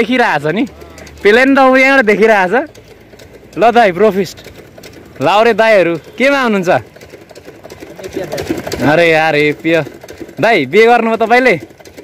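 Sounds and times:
man speaking up close: 0.0s - 2.7s, 3.6s - 4.4s, 5.2s - 6.8s, 8.0s - 11.6s.

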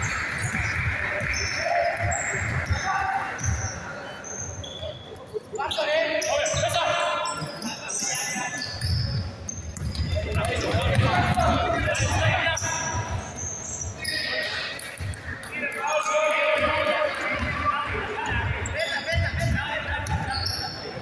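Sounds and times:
sneaker squeaks: 0.0s - 21.0s
basketballs bouncing on hardwood: 8.8s - 12.3s.

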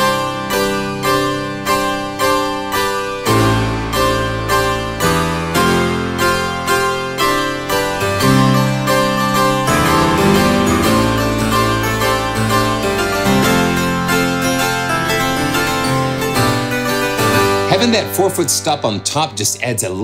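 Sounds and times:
harpsichord chords and notes: 0.0s - 20.0s.

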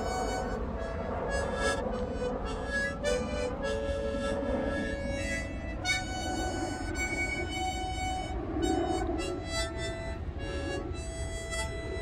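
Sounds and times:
harmonica chords: 0.0s - 12.0s.

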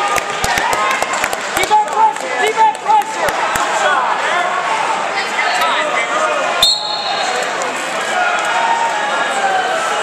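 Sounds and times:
crowd chatter in a gym: 0.0s - 10.0s.

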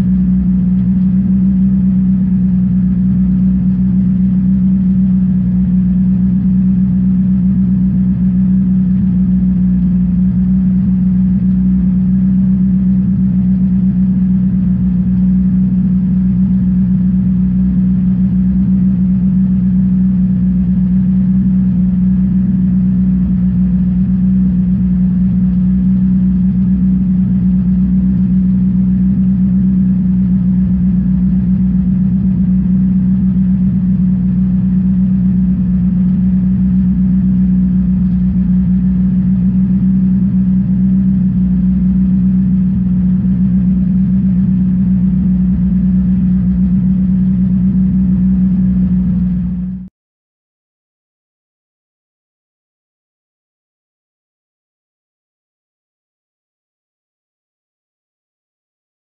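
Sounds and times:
car engine idling: 0.0s - 49.8s.

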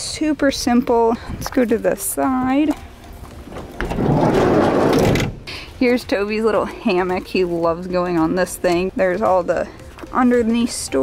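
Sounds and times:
sliding van door rumbling open: 3.6s - 5.5s.

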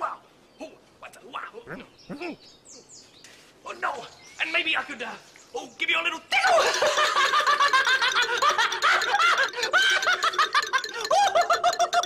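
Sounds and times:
man laughing: 6.5s - 12.0s.

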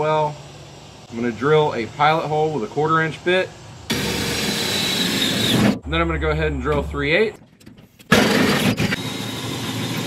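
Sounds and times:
cordless drill boring through metal: 3.9s - 5.8s, 8.1s - 10.0s.

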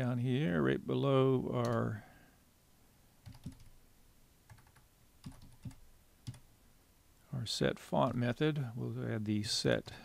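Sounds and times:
typing on computer keyboard: 3.2s - 3.8s, 4.5s - 6.4s.

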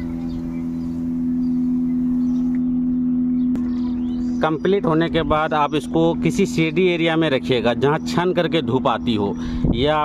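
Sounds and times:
steady low hum: 0.0s - 9.8s.

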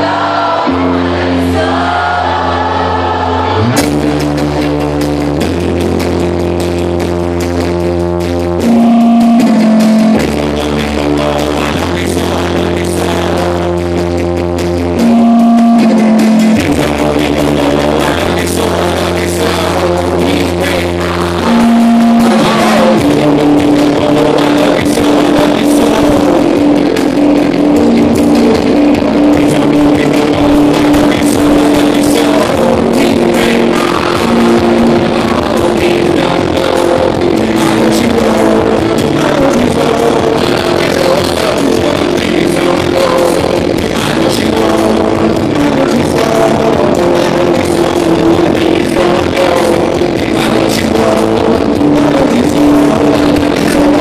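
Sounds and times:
rock band playing live: 0.0s - 54.0s
held keyboard notes: 14.9s - 20.8s.

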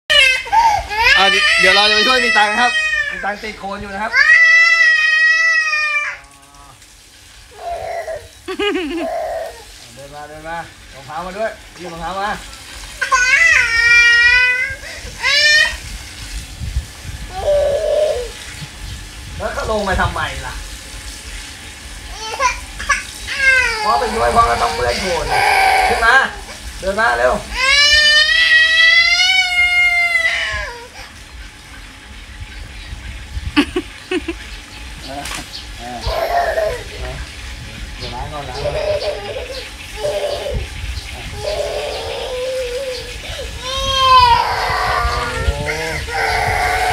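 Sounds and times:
toddler girl crying: 0.1s - 3.4s, 4.1s - 6.2s, 7.5s - 9.7s, 13.0s - 15.8s, 22.1s - 26.5s, 27.5s - 31.1s, 36.0s - 37.0s, 38.6s - 46.9s.

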